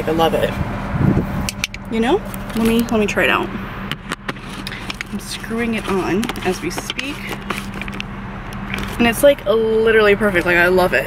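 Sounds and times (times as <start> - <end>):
low hum in car cabin: 0.0 - 11.0
camera handling clicks and scrapes: 3.9 - 5.2, 5.8 - 9.0.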